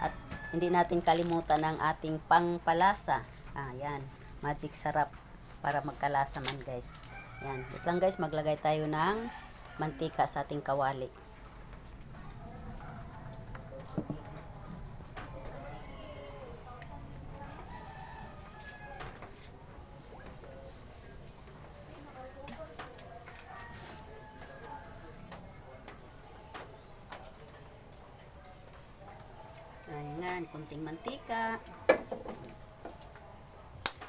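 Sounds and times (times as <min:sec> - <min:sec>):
faint chicken calls: 0:15.2 - 0:20.8.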